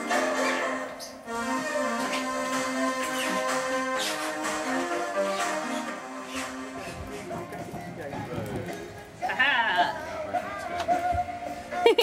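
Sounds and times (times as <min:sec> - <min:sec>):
background music: 0:00.0 - 0:12.0
indistinct voices talking: 0:01.9 - 0:11.1.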